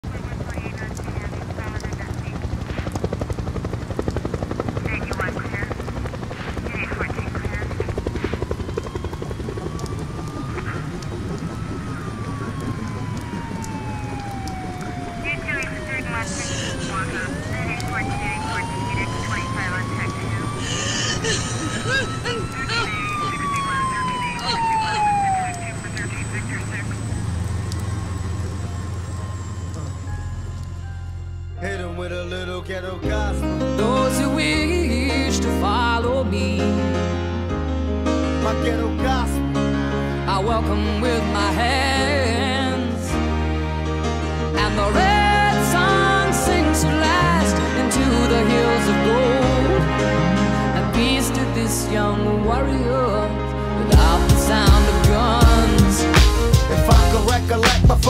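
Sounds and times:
helicopter rotor running: 0:00.0 - 0:30.8
emergency siren wailing: 0:00.0 - 0:31.6, 0:38.4 - 0:57.9.

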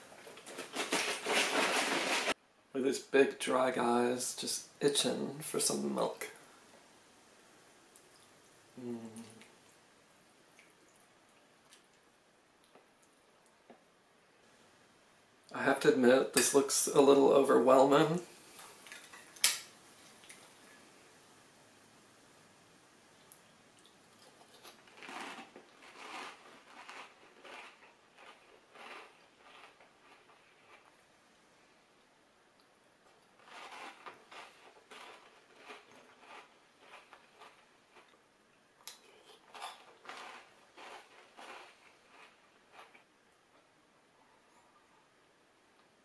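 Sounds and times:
chewing crunchy cereal: 0:23.8 - 0:31.0, 0:33.2 - 0:38.2, 0:38.9 - 0:43.1.

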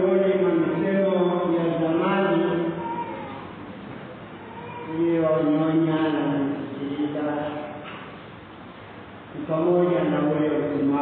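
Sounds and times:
man chanting: 0:00.0 - 0:02.8.

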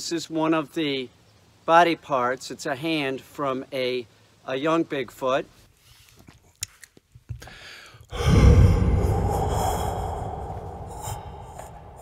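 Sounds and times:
man gasping into microphone: 0:07.4 - 0:12.0.

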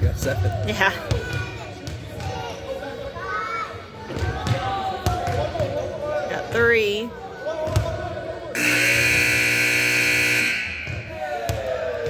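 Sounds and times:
children's voices: 0:01.2 - 0:04.5
scoreboard buzzer: 0:08.6 - 0:11.2.

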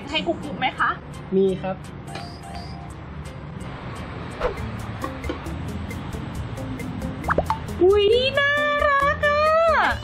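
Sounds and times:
background music with ticking beat: 0:00.0 - 0:10.0.

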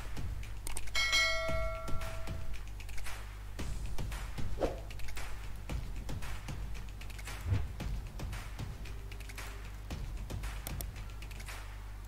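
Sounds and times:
bell ding: 0:01.0 - 0:02.4.

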